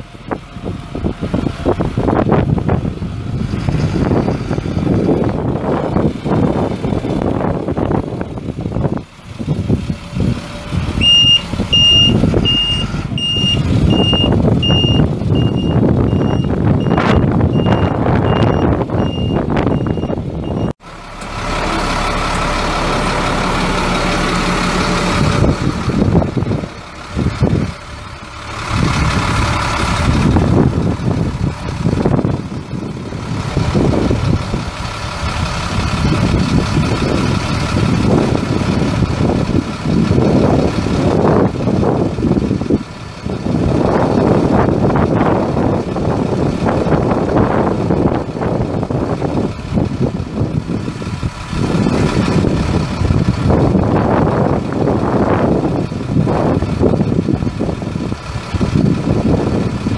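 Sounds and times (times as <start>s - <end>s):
diesel truck engine: 0.0s - 59.9s
backup alarm beeping: 11.0s - 20.7s.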